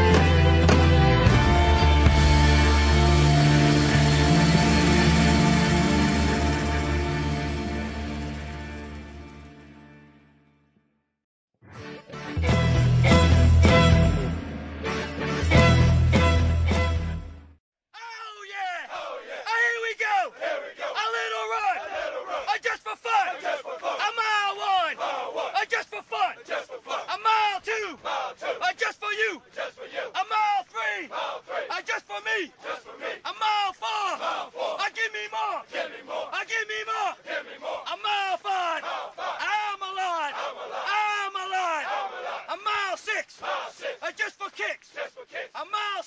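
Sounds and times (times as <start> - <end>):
group of people yelling: 18.0 - 46.0
voices shouting long cries: 18.1 - 44.1.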